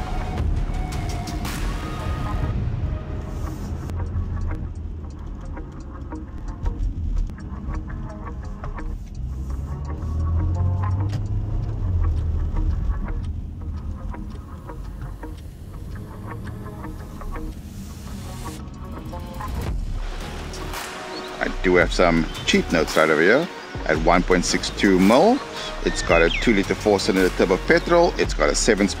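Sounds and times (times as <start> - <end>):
car engine and tyre rumble: 0.0 - 28.8
background music: 0.0 - 29.0.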